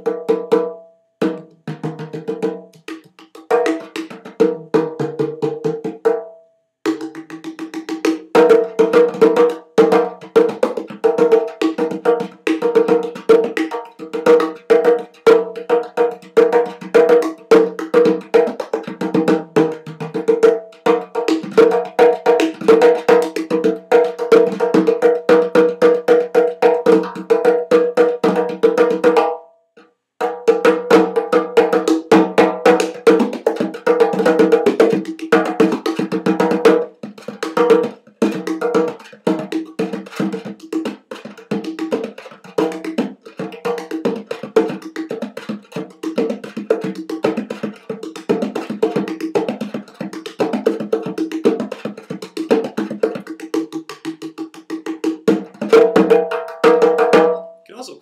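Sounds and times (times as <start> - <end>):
hand drum played fast: 0.0 - 6.3, 6.9 - 29.4, 30.2 - 58.0.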